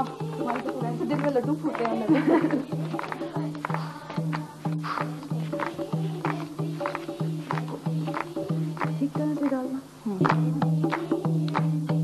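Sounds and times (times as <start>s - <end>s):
hand claps: 0.0s - 9.6s, 10.2s - 12.0s
dholak drum beating: 0.0s - 12.0s.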